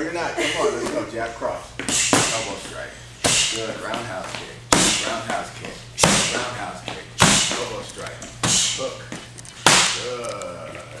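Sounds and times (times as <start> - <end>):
punches hitting strike pads: 4.7 - 5.4, 6.0 - 7.8, 9.6 - 10.1.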